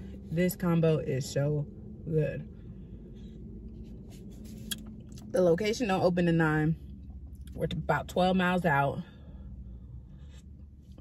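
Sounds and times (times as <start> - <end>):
low hum inside a car: 0.0 - 11.0.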